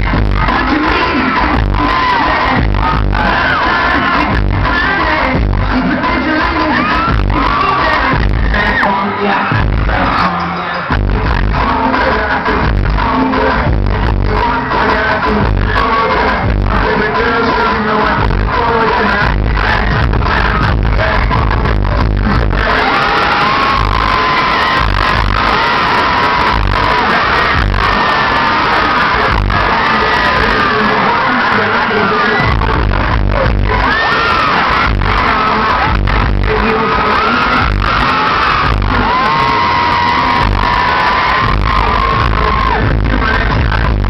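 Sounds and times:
live pop concert music: 0.0s - 44.0s.

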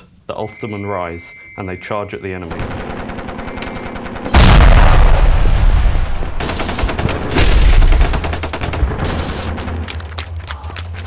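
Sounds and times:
rifle and machine-gun fire: 2.5s - 9.8s
heavy explosion: 4.3s - 6.4s.

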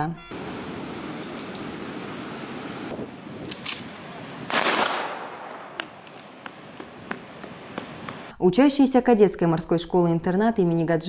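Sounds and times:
open-air background noise: 0.0s - 11.0s
faint clicks: 1.2s - 1.7s, 5.7s - 8.3s.

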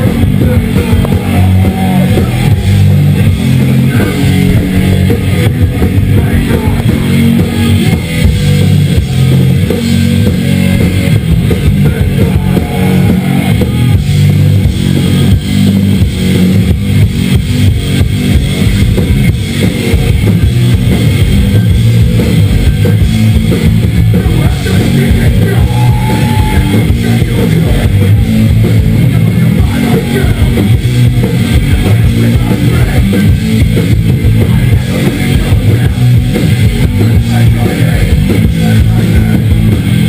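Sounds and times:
drum kit: 0.0s - 40.0s
electric guitar: 0.0s - 40.0s
heavy rock band playing loud: 0.0s - 40.0s.

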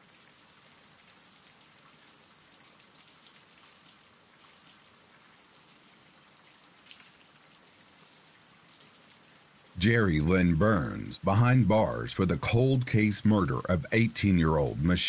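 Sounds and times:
steady rainfall: 0.0s - 15.0s.

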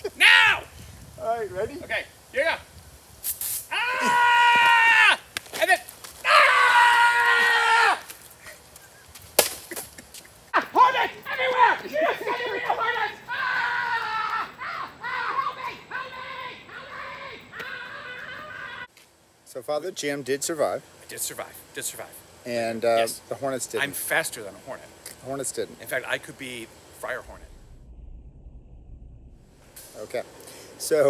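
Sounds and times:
excited shouting: 0.0s - 0.7s, 3.7s - 8.1s, 10.5s - 18.9s
men yelling: 0.0s - 0.7s, 3.7s - 5.2s, 10.6s - 18.9s
sharp hit: 27.0s - 30.5s.

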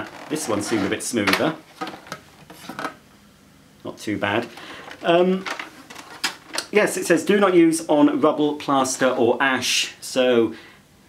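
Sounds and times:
plastic wheel rasping rub: 4.5s - 6.7s.

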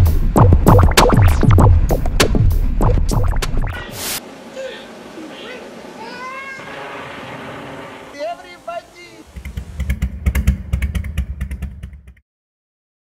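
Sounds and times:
low rumble of rapid pulses: 0.0s - 12.2s.

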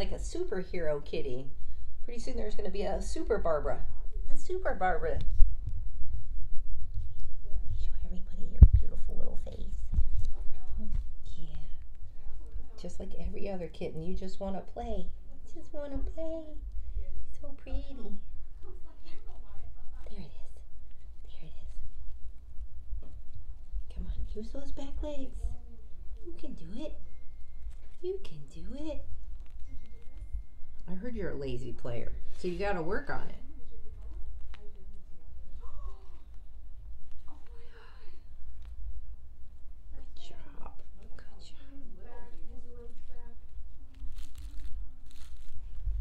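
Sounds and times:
steady low rumble: 0.0s - 41.0s, 41.9s - 46.0s
steady low hum: 0.0s - 46.0s.

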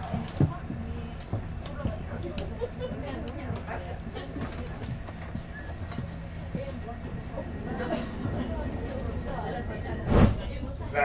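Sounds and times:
faint voices: 0.0s - 11.0s
train low hum: 0.0s - 11.0s.

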